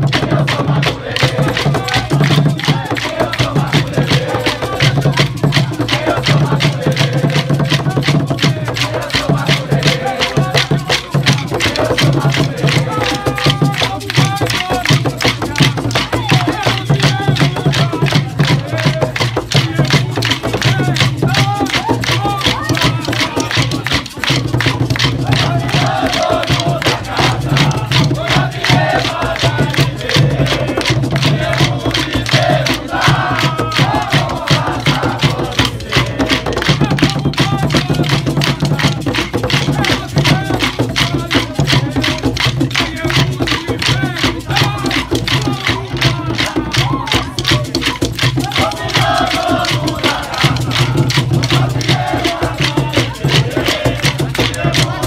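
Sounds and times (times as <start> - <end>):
atabaque drums: 0.0 - 55.0
group singing: 0.0 - 55.0
wooden sticks clashing together: 19.9 - 30.1.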